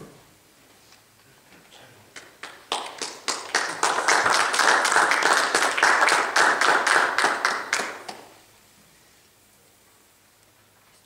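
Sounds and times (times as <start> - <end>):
audience applauding: 2.2 - 8.4.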